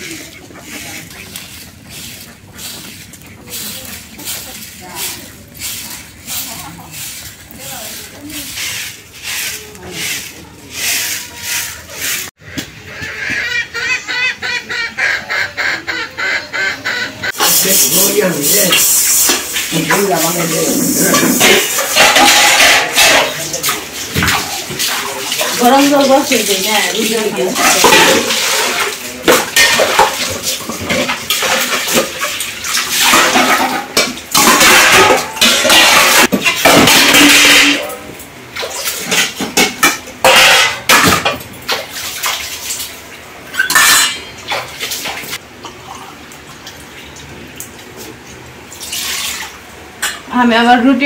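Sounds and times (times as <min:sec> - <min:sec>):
water splashing into buckets: 0:00.0 - 0:13.3, 0:17.3 - 0:50.4
duck quacking: 0:12.9 - 0:17.4
metal plates clinking: 0:17.4 - 0:38.1, 0:39.0 - 0:41.7, 0:43.5 - 0:44.7.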